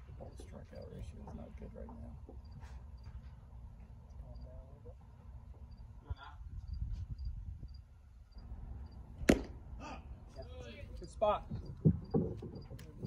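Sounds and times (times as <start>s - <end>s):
baseball smacking into mitt: 9.2s - 9.6s.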